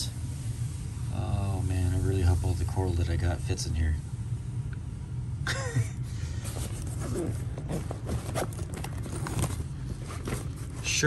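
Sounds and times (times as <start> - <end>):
steady low hum: 0.0 - 11.0
bags rustling and knocking: 6.4 - 11.0.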